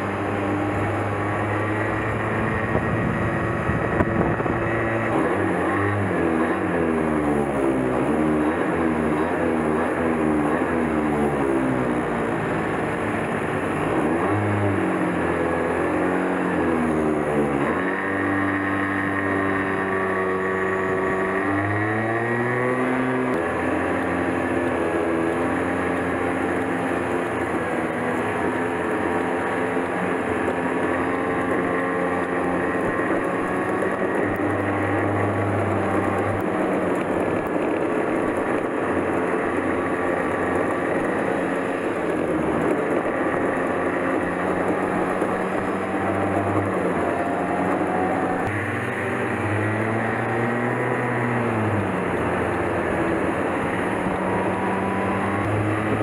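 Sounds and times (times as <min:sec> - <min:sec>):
go-kart engine revving: 0:00.0 - 0:56.0
road and wind noise: 0:00.0 - 0:56.0.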